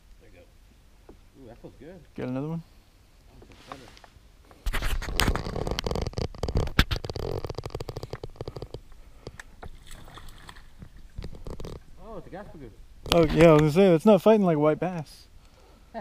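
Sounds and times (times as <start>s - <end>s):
handling noise on microphone: 3.4s - 8.8s.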